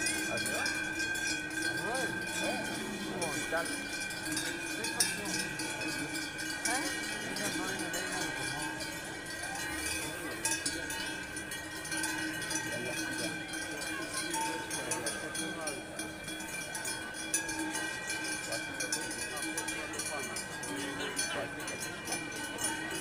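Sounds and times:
cowbells ringing: 0.0 - 23.0
crowd murmur: 0.0 - 23.0.

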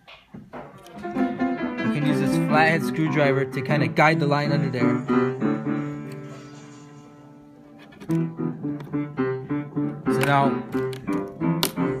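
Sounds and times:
held musical chord: 1.0 - 6.2.

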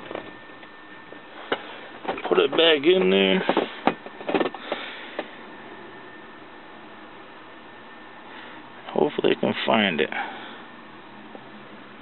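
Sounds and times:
car cabin hiss and hum: 0.0 - 12.0.

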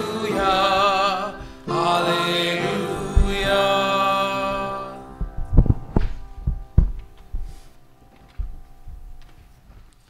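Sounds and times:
dull low thumps: 3.1 - 3.6, 5.2 - 7.6, 8.3 - 9.3.

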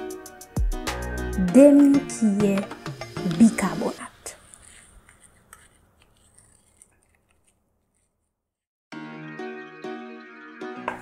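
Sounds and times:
background music: 0.0 - 4.4, 8.9 - 11.0
metal spoon scraping in cup: 4.2 - 8.1.

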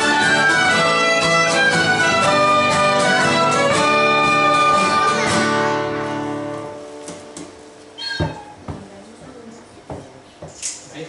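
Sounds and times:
short high squeak: 8.0 - 8.6.

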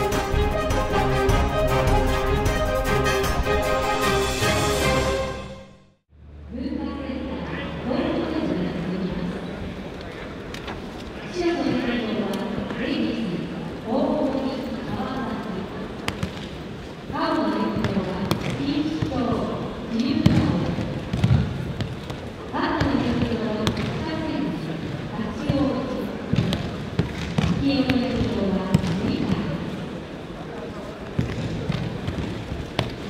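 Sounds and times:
person speaking in echoing hall: 6.5 - 9.7, 11.2 - 16.0, 17.1 - 21.4, 22.5 - 31.9.

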